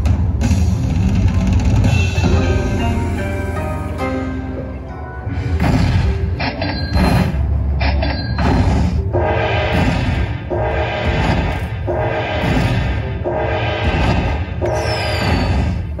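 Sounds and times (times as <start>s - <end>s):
slot machine music: 1.0s - 9.8s, 10.4s - 16.0s.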